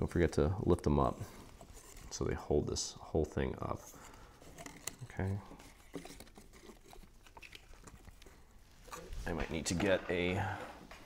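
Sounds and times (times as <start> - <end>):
paper crinkling: 3.7 - 10.2.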